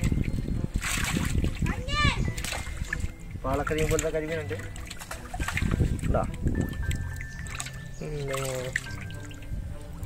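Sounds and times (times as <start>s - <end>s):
water dripping: 0.0s - 10.0s
water splashing in a bucket: 0.0s - 10.0s.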